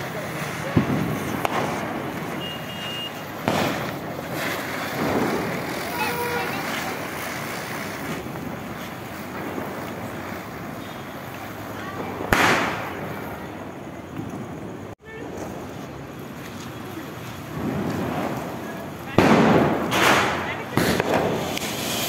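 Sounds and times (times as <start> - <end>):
firework fountains hissing: 0.0 - 22.0
firework pops: 0.0 - 22.0.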